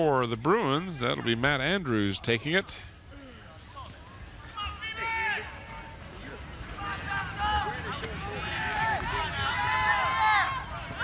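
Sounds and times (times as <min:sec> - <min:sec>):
voices shouting: 0:04.4 - 0:11.0.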